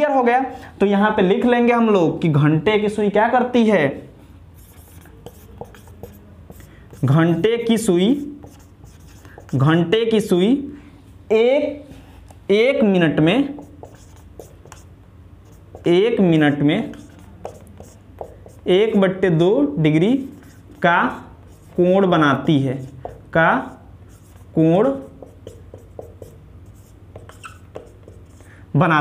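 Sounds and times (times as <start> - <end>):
marker writing on whiteboard: 4.6 - 10.3, 13.2 - 19.3, 19.9 - 28.6.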